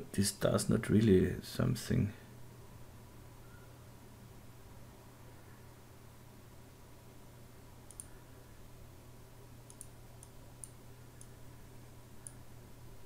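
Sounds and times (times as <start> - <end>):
low steady hum: 0.0 - 13.0
computer mouse clicking: 7.8 - 8.2, 9.6 - 11.4, 12.2 - 12.4.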